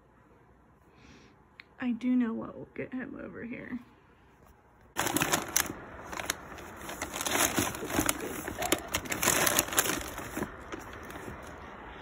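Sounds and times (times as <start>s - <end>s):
plastic bags crinkling: 5.0s - 11.6s.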